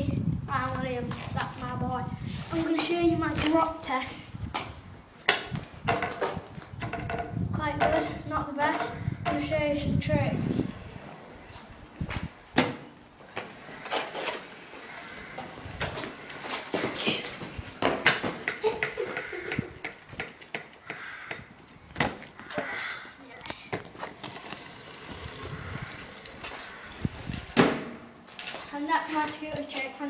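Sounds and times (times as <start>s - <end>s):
stunt scooter clattering on tarmac: 5.3s - 9.5s.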